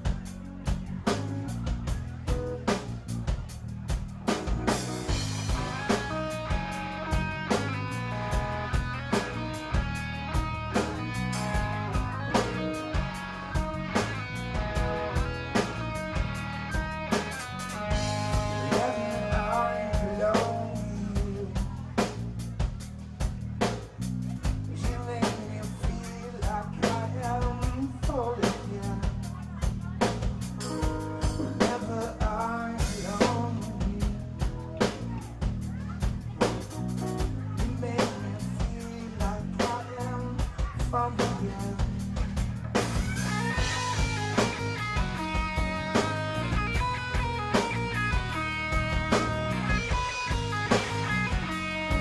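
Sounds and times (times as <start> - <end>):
bass and guitar: 0.0 - 52.0
drum kit beat: 0.0 - 52.0
lead melody: 0.0 - 52.0.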